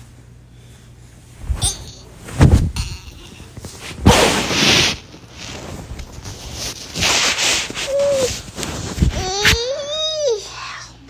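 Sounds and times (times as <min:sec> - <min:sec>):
fabric rubbing on microphone: 0:03.7 - 0:09.6.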